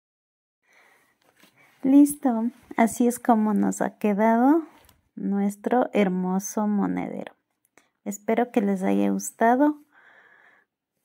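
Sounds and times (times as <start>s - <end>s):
faint rustle of hands: 0.8s - 3.7s
woman speaking: 1.8s - 7.4s, 8.1s - 9.9s.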